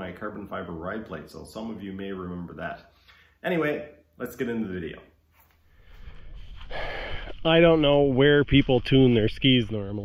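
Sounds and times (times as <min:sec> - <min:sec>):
sharp breath drawn in: 0:05.6 - 0:07.4.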